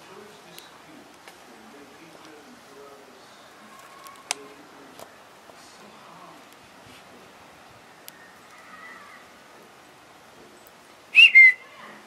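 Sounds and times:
two-note whistle: 11.2 - 11.6.

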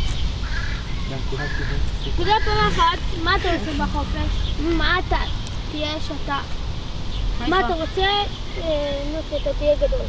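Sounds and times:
bird calling: 0.0 - 6.0.

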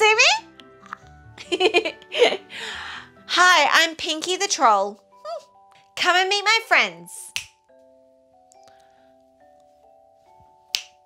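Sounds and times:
finger snap: 7.2 - 7.7, 10.6 - 11.0.

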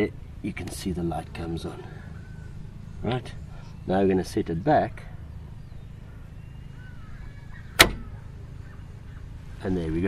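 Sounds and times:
steady low hum: 0.0 - 10.0
contactor clacking shut: 7.7 - 8.2.

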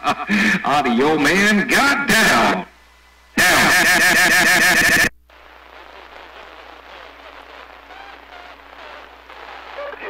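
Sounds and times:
radio static hiss: 0.0 - 10.0
radio transmission voice: 0.3 - 2.8, 4.4 - 10.0
faint wavering radio voice: 5.8 - 10.0.

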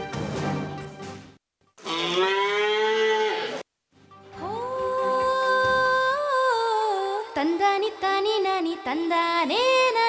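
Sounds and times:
calf mooing: 1.8 - 3.6.

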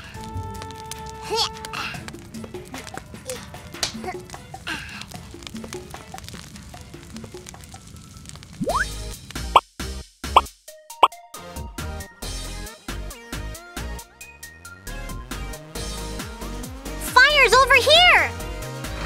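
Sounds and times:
light children's music: 0.0 - 7.5, 8.6 - 19.0
cartoon plops and drips: 8.6 - 8.9
upward bloop glides: 8.6 - 8.9.

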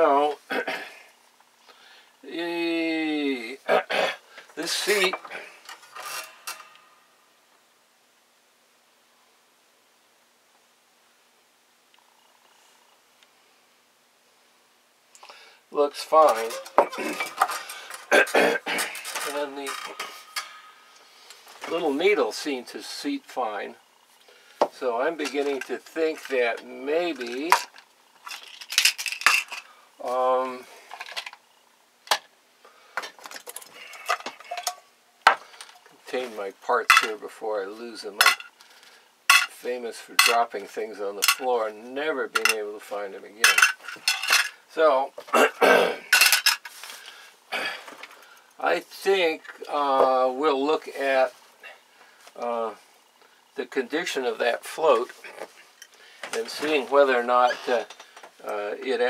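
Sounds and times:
hand tools clicking and clinking: 4.9 - 6.8, 16.3 - 20.7, 27.2 - 29.7, 33.2 - 34.9, 36.9 - 37.1, 38.2 - 38.5, 39.3 - 39.6, 40.2 - 40.4, 41.2 - 41.5, 42.4 - 42.6, 43.4 - 44.6, 46.1 - 46.8.

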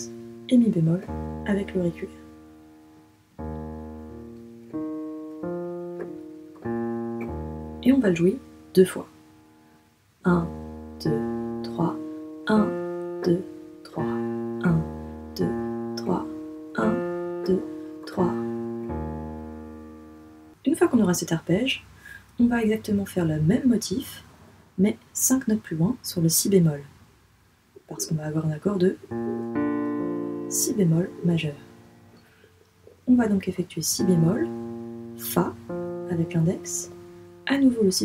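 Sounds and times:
slow piano arpeggio: 0.0 - 9.6, 10.3 - 20.6, 29.0 - 32.4, 33.9 - 38.0.

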